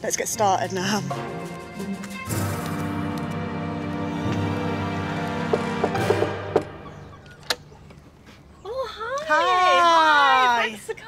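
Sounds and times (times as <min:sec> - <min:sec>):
background music: 0:00.0 - 0:07.4.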